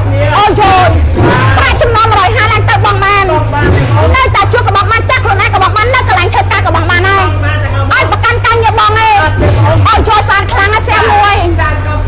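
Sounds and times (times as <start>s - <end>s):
steady low rumble: 0.0s - 12.0s
woman talking: 0.4s - 11.6s.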